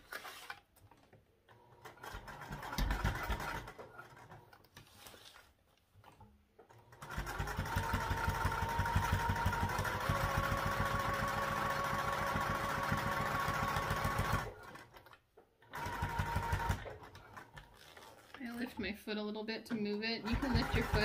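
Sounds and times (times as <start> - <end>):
electric sewing machine stitching: 1.5 - 4.6, 6.7 - 18.8, 19.7 - 21.0.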